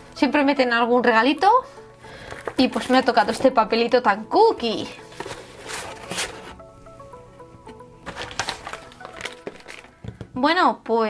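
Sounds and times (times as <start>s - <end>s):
paper in plastic sleeve rustling: 4.8s - 6.6s, 8.0s - 10.0s.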